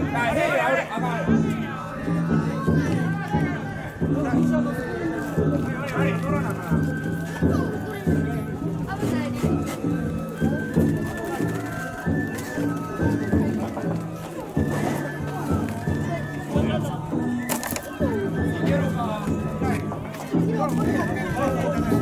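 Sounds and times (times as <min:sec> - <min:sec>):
crowd voices: 0:00.0 - 0:22.0
drums and small gongs: 0:00.0 - 0:22.0
flute melody: 0:00.0 - 0:22.0.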